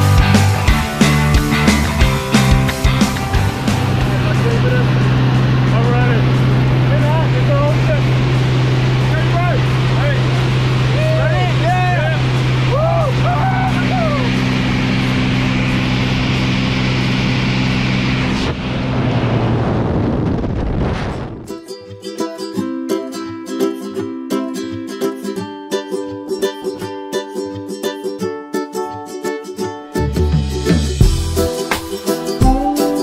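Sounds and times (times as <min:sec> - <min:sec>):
plane engine and propeller droning: 0:00.0 - 0:21.4
wind rushing in: 0:01.6 - 0:09.9, 0:14.4 - 0:21.6
voices shouting: 0:10.9 - 0:14.4.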